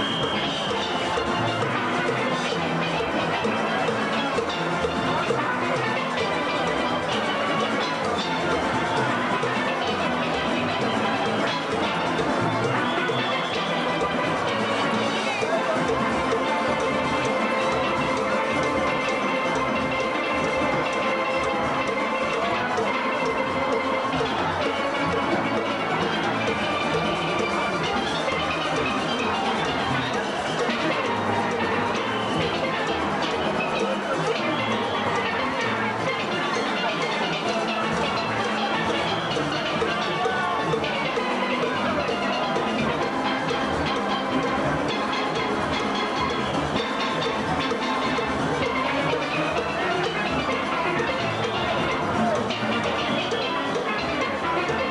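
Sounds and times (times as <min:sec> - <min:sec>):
live band music: 0:00.0 - 0:54.9.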